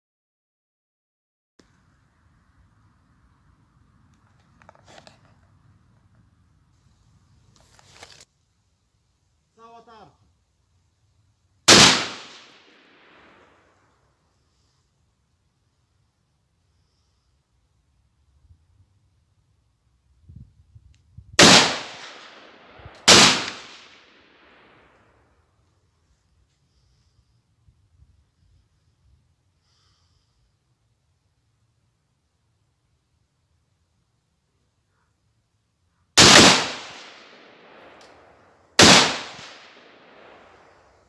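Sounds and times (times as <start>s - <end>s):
rifle shots with echo: 11.7s - 13.7s, 21.4s - 25.0s, 36.2s - 41.0s.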